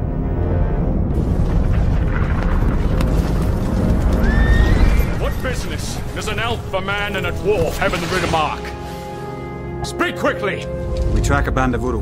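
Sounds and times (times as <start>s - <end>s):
film music: 0.0s - 12.0s
horses galloping: 1.4s - 7.9s
horse whinnying: 4.2s - 5.2s.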